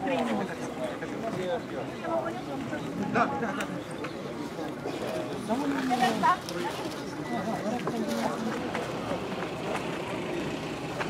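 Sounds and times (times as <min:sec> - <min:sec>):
indistinct talk of people: 0:00.0 - 0:11.0
open-air background noise: 0:00.0 - 0:11.0.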